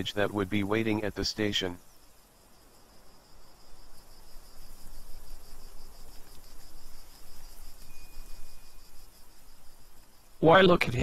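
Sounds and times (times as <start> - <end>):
crickets chirping: 0.0 - 11.0
soft hiss: 0.0 - 11.0
thin high whistle: 7.8 - 8.8.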